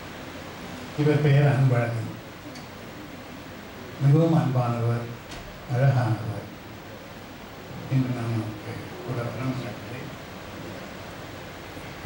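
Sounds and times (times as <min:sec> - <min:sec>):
low room tone hiss: 0:00.0 - 0:12.0
faint click: 0:02.5 - 0:02.8.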